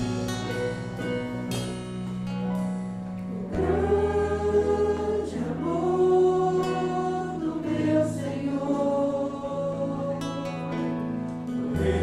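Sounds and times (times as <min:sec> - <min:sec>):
church band with bass guitar: 0:00.0 - 0:12.0
group singing a hymn: 0:03.3 - 0:12.0.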